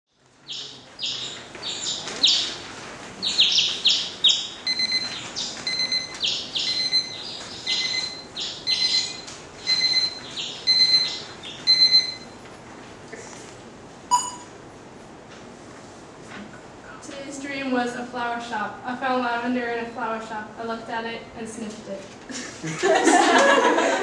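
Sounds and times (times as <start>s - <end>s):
birds chirping: 0.4s - 12.4s
alarm clock beeping: 3.4s - 12.4s, 14.1s - 14.5s.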